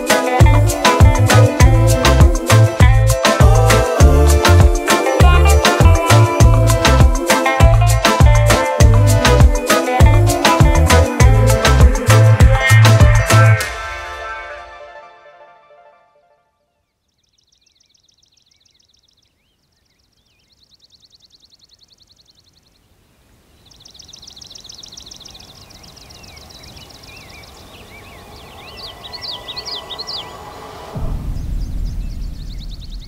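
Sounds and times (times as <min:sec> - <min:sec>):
bird trills and chirps: 0:17.0 - 0:22.8, 0:23.6 - 0:31.0
bird warbling: 0:23.7 - 0:31.0
loud low rumble: 0:29.8 - 0:33.0.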